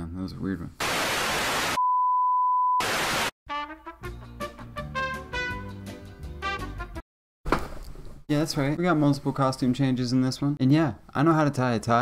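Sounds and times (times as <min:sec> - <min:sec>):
television static hiss: 0:00.8 - 0:01.8
pure test tone beep: 0:01.8 - 0:02.8.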